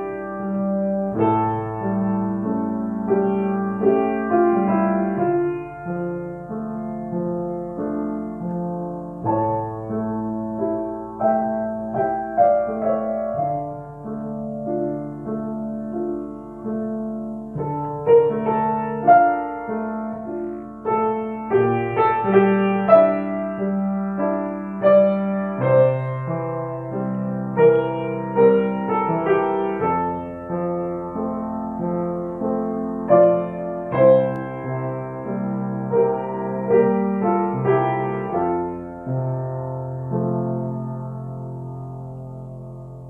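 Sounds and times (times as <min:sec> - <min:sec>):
grand piano melody: 0:00.0 - 0:43.0.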